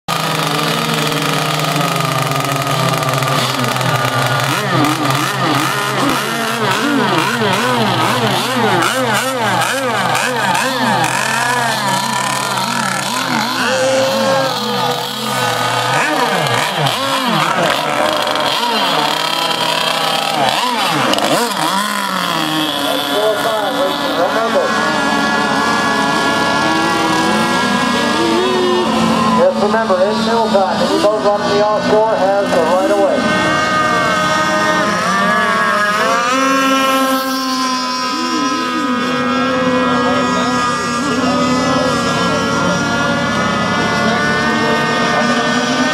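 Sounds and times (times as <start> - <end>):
model boat engines revving: 0.0 - 45.9.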